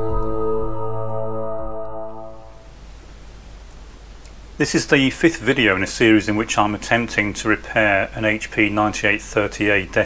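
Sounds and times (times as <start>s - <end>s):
soft ambient music: 0.0s - 2.7s
steady low hiss: 1.9s - 10.0s.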